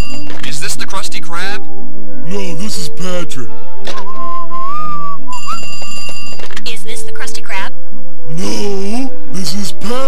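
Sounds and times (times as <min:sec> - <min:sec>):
wavering whistled note: 0:04.0 - 0:06.4.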